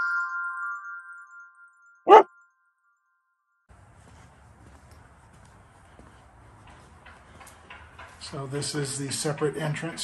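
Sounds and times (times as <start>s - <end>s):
dog bark: 2.1s - 2.3s.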